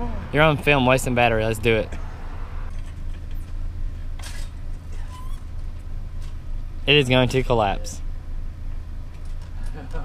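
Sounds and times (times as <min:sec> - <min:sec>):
low vehicle rumble: 0:00.0 - 0:10.0.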